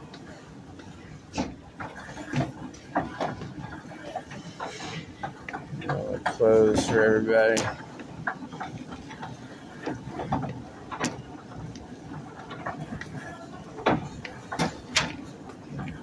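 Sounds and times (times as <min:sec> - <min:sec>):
sharp clicks and knocks: 0:05.2 - 0:13.2, 0:13.8 - 0:16.0.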